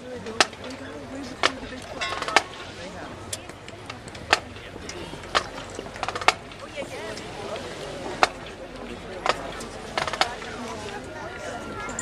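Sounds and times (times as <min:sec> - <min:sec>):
murmur of crowd voices: 0:00.0 - 0:12.0
sharp clacks: 0:01.4 - 0:02.7, 0:03.3 - 0:06.7, 0:09.2 - 0:10.6.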